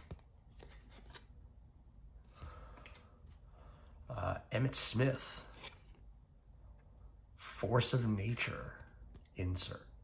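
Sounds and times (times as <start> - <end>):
light clicks of card edges: 2.3 - 3.4.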